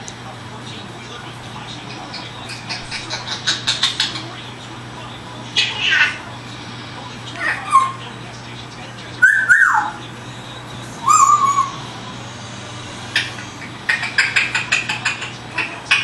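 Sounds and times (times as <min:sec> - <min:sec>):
parrot whistling calls: 0:05.6 - 0:06.2, 0:07.4 - 0:08.1, 0:09.2 - 0:10.0, 0:11.0 - 0:11.9, 0:13.0 - 0:16.0.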